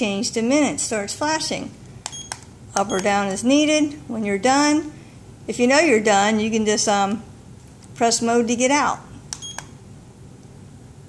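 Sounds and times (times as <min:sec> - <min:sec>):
button clicks: 0:02.0 - 0:03.2, 0:09.3 - 0:09.7
high-pitched key beep: 0:02.1 - 0:03.2, 0:09.4 - 0:09.7.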